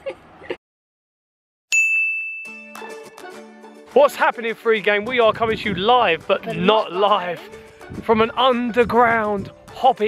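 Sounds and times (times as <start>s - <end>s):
bright bell ding: 1.7s - 3.0s.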